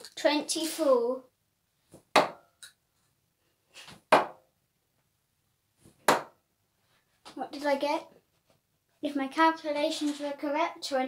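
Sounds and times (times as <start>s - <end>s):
darts thudding into dartboard: 2.0s - 2.4s, 3.9s - 4.4s, 6.0s - 6.4s.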